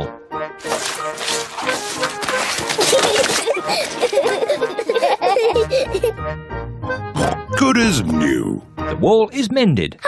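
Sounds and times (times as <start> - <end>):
light background music: 0.0 - 10.0
paint brushing and splattering: 0.6 - 5.1.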